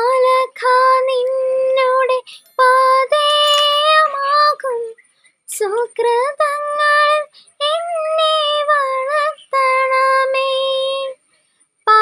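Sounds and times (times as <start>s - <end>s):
woman singing unaccompanied: 0.0s - 11.2s.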